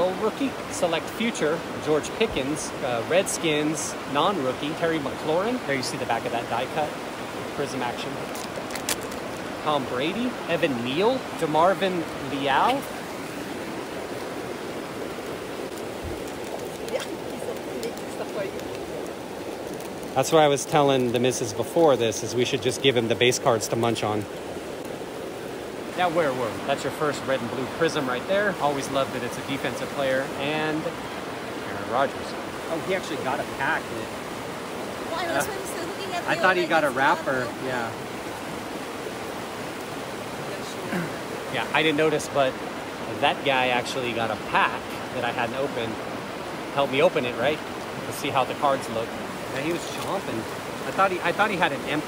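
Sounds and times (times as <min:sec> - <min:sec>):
river flowing over rocks: 0:00.0 - 0:52.0.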